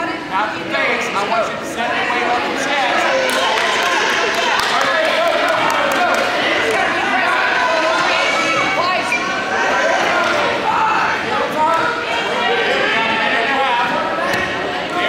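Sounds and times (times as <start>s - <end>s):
voices talking and calling out: 0.0s - 15.0s.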